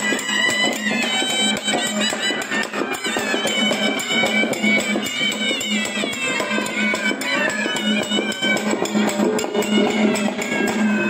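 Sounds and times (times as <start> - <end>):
drums beating: 0.0 - 11.0
reed pipe melody: 0.0 - 11.0.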